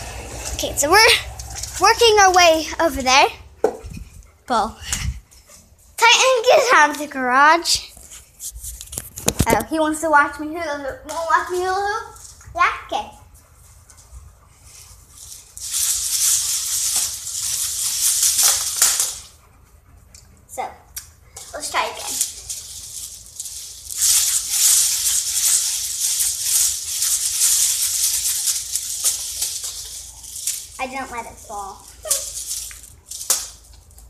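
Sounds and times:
hula hoop rattling: 0.0 - 19.5, 20.6 - 34.0.

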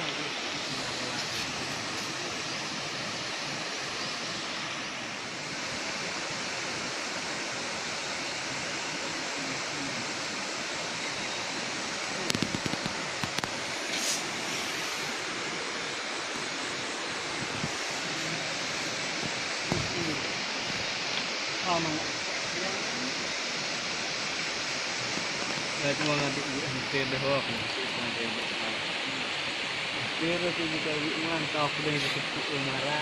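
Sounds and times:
river running over rocks: 0.0 - 33.0.

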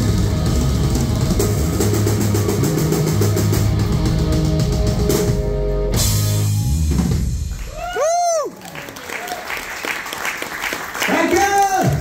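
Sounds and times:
fast drum kit hits: 0.0 - 7.9
live rock band playing: 0.0 - 8.0.

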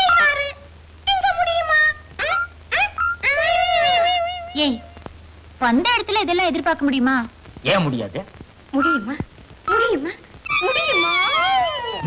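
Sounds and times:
high whining vocal sound: 10.4 - 12.0.

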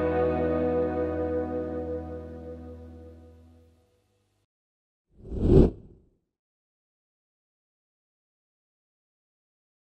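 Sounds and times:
whoosh sound effect: 5.2 - 6.0.

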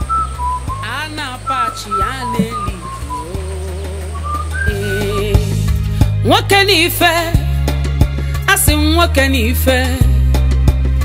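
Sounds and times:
slow wavering melody: 0.0 - 5.5.

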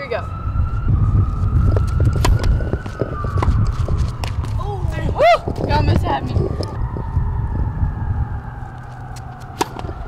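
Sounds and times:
wind rumble on microphone: 0.0 - 10.0
tennis racket hitting ball: 2.1 - 4.5, 9.2 - 10.0.

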